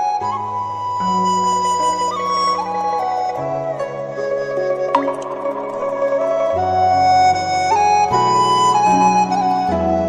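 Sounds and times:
slow flute melody: 0.0s - 10.0s.

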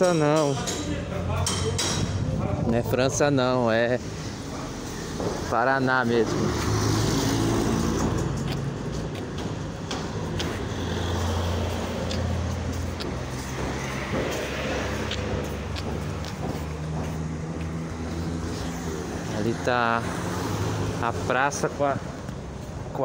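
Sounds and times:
car engines passing: 0.0s - 23.0s.

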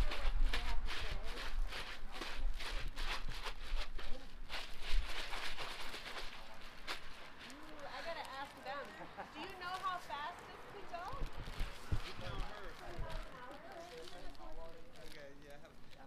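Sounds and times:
towel and plastic bag crackling: 0.0s - 16.0s.

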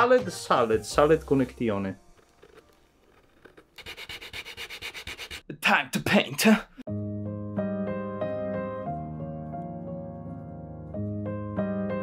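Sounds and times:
rapid scraping on hard surface: 2.0s - 5.5s.

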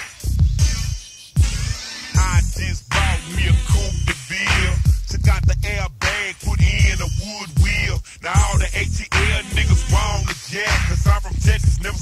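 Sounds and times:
heavy bass and drums: 0.0s - 12.0s
slowed rap vocal: 0.2s - 12.0s.

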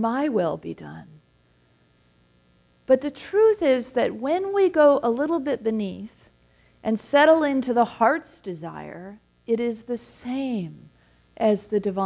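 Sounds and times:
woman speaking: 0.0s - 1.2s, 2.9s - 6.2s, 6.9s - 12.0s
faint steady hum: 0.0s - 12.0s.

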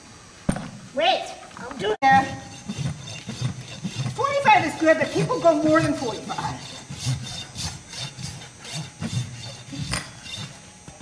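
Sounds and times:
rasp filing a hoof: 2.0s - 11.0s.

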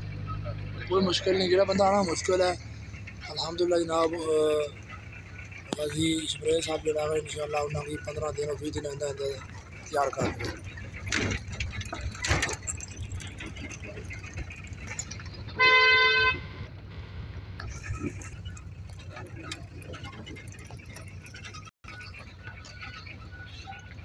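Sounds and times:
car engine and road rumble: 0.0s - 24.0s
light rattles: 1.1s - 24.0s
car horn honk: 15.5s - 16.7s.

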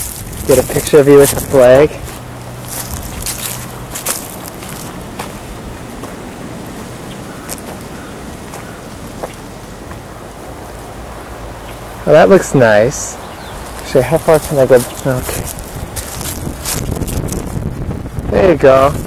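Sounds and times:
wind on microphone: 0.0s - 10.8s, 13.2s - 19.0s
footsteps on dry grass and leaves: 0.0s - 11.0s, 11.6s - 17.9s.

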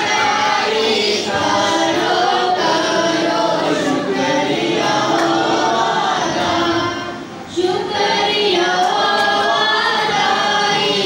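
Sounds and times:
group singing without instruments: 0.0s - 11.0s.

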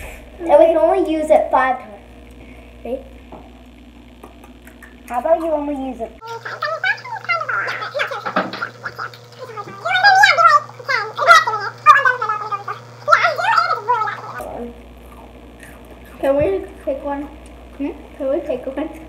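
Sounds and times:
girls laughing: 6.2s - 9.8s.

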